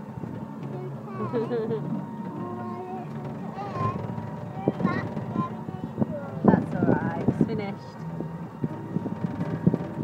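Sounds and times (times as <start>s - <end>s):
ride car rattling: 0.0s - 10.0s
wind on microphone: 4.1s - 10.0s.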